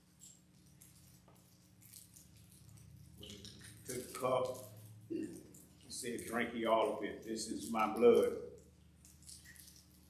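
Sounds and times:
small cups rattling: 1.8s - 10.0s.

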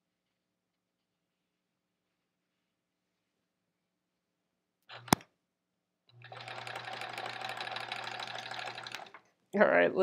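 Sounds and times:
sharp click: 4.9s - 5.3s
electric sewing machine stitching: 6.1s - 9.3s.

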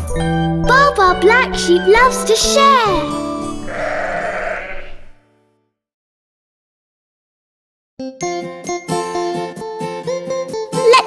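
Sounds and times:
sheep bleating: 3.5s - 5.2s.

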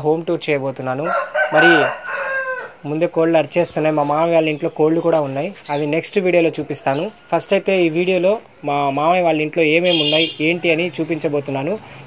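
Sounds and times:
rooster crowing: 1.0s - 2.8s.

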